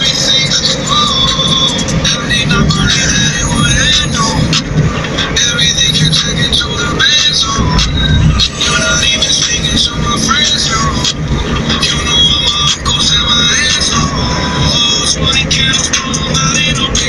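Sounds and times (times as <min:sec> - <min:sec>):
car engine and road rumble: 0:00.0 - 0:17.0
song on car stereo: 0:00.0 - 0:17.0.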